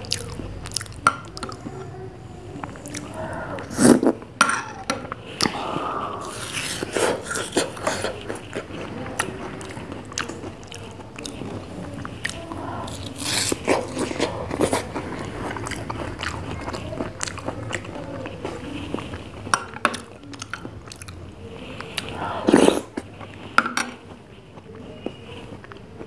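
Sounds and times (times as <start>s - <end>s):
person eating and chewing: 0.0s - 26.0s.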